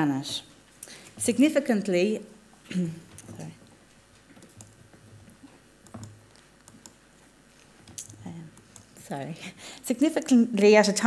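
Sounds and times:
faint clicks and taps: 3.1 - 9.0.

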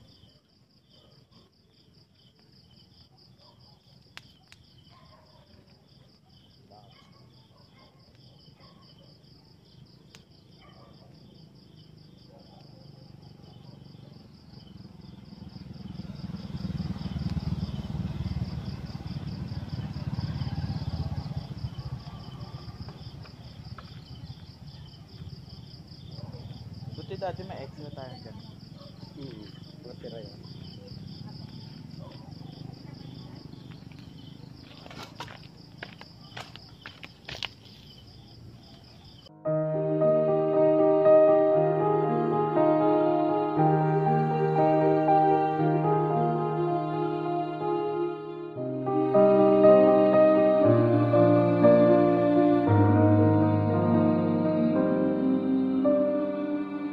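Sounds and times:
crickets chirping: 0.0 - 56.9.

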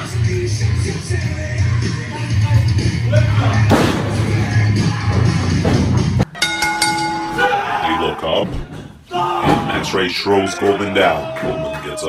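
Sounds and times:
ring bell struck: 6.2 - 7.7.

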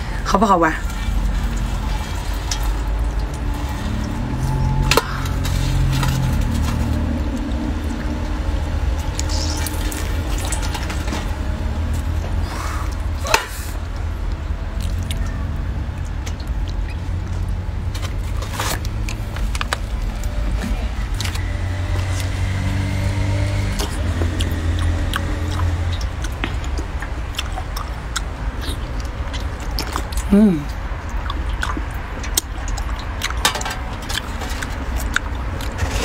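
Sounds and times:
engine humming with high whine: 0.0 - 36.0
wet squelching of shellfish meat: 0.8 - 22.4.

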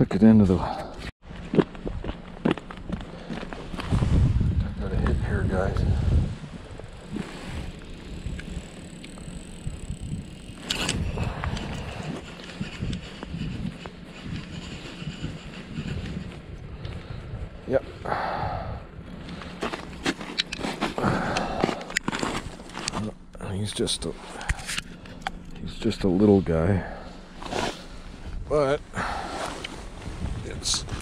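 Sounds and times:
gusty wind buffeting microphone: 2.8 - 22.9, 24.7 - 31.0.

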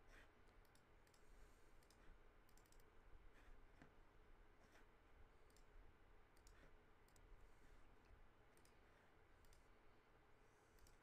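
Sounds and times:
computer mouse clicks: 0.1 - 2.9, 5.4 - 5.7, 6.3 - 7.3, 8.5 - 8.8, 9.4 - 9.7, 10.7 - 11.0.

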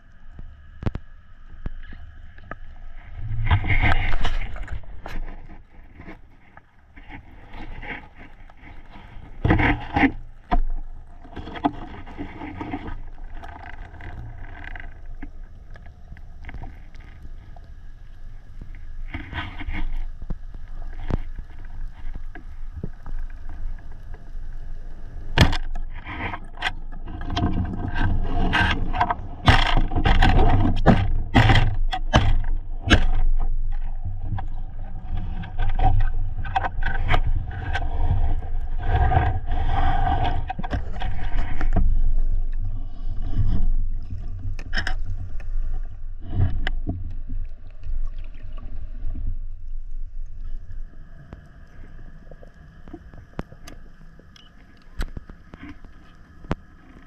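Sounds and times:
muffled underwater water rushing: 0.0 - 57.0
gear scraping and knocking on camera: 3.1 - 15.3, 25.3 - 47.3.

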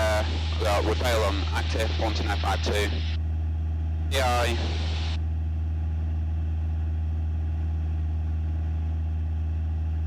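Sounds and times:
airplane engine droning: 0.0 - 10.0.

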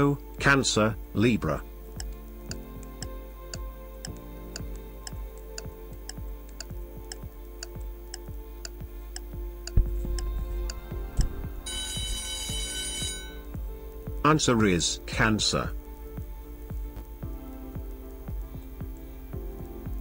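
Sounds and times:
background music: 0.0 - 20.0
clock ticking: 2.0 - 20.0
alarm ringing: 11.6 - 13.5.

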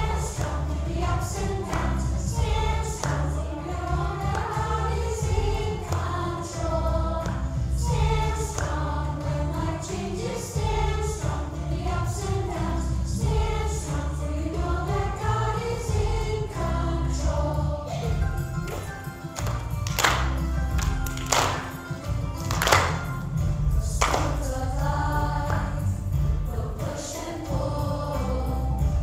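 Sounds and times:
children singing together: 0.0 - 18.6, 23.8 - 29.0
backing music with strong bass: 0.0 - 29.0.

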